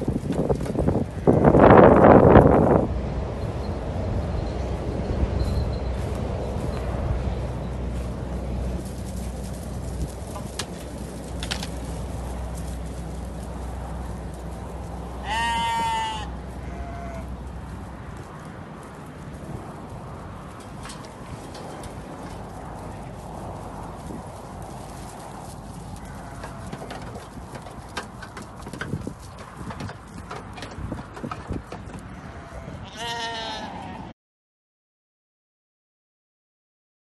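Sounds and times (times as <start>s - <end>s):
sheep bleating: 15.2s - 17.3s, 26.0s - 27.2s, 32.1s - 34.1s.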